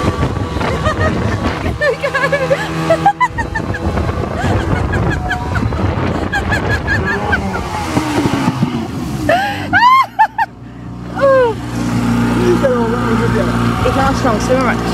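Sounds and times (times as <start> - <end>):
rushing water and spray: 0.0 - 9.8
motorboat engine: 0.0 - 14.9.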